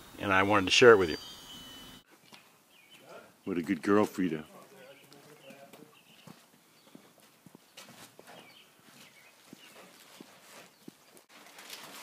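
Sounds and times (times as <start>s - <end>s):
soft high chirps: 0.3s - 2.1s.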